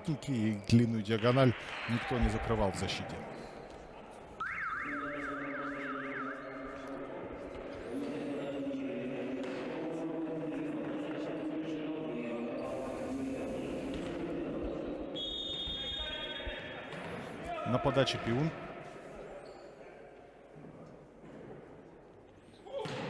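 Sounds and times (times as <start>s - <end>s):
high whistle: 4.4s - 7.0s, 15.1s - 16.6s
warbling siren-like effect: 4.4s - 7.0s.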